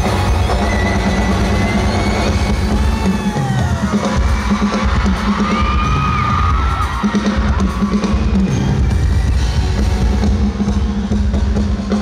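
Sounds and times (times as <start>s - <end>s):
fans screaming: 0.0s - 12.0s
loud live band music: 0.0s - 12.0s.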